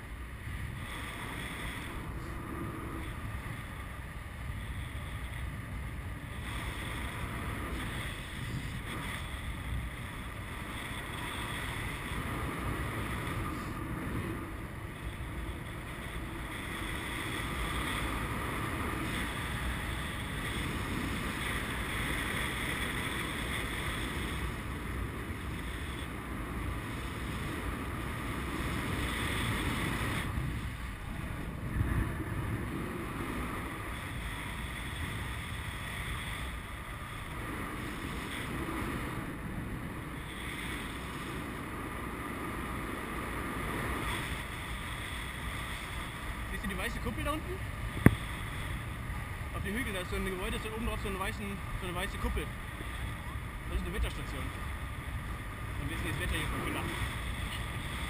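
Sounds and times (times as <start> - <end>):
wind rushing over microphone: 0.0 - 58.0.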